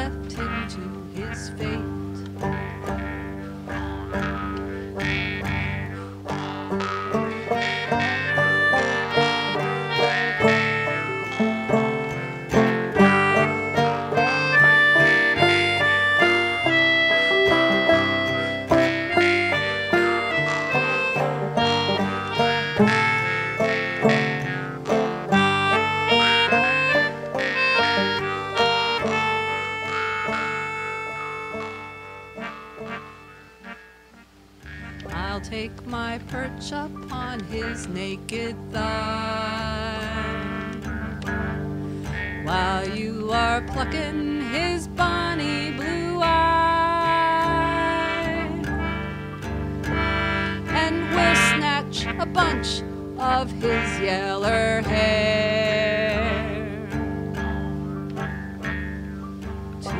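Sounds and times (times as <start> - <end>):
plucked string accompaniment: 0.0 - 59.9
squeezebox melody: 6.8 - 34.9, 48.2 - 52.8.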